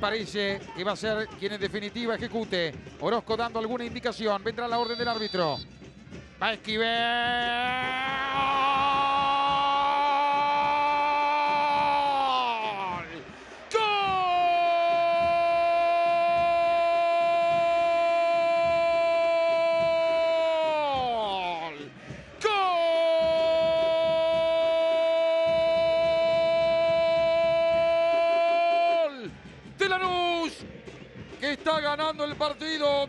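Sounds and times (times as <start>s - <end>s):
commentator shouting goal: 3.4s - 5.6s, 6.4s - 30.6s.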